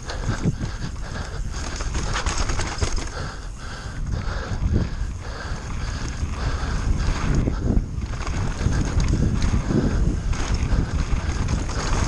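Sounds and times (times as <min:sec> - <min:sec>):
bike chain and frame rattling: 0:00.0 - 0:12.0
wind rumbling on microphone: 0:00.0 - 0:12.0
tyres rolling over dirt: 0:05.8 - 0:12.0.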